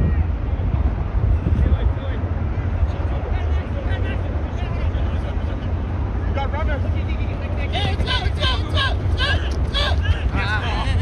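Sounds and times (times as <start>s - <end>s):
steady low rumble: 0.0s - 11.0s
players shouting: 7.6s - 11.0s.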